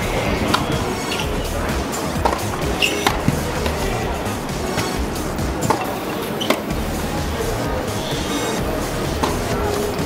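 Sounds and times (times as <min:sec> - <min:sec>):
background noise: 0:00.0 - 0:10.0
tennis ball struck by racket: 0:00.1 - 0:06.7, 0:09.1 - 0:09.8.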